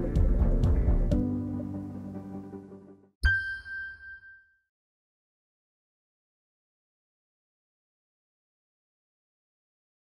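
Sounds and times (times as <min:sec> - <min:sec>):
bright electronic chime: 0:03.2 - 0:04.6.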